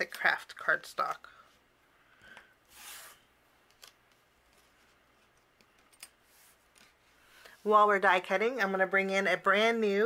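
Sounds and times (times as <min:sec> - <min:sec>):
soft rustle: 0:06.2 - 0:07.9.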